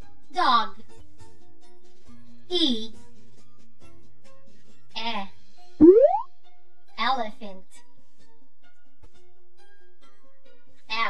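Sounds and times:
cartoon boing: 5.8s - 6.3s.

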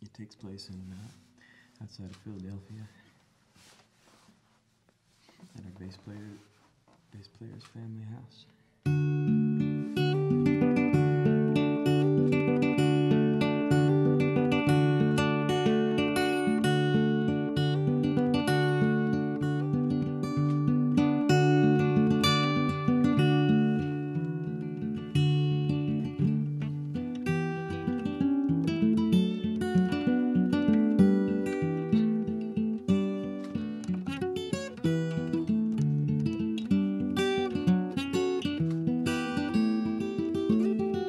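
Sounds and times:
solo acoustic guitar picking: 8.8s - 41.0s.

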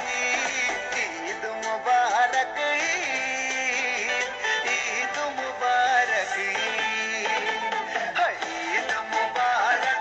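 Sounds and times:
instrumental backing: 0.0s - 10.0s.

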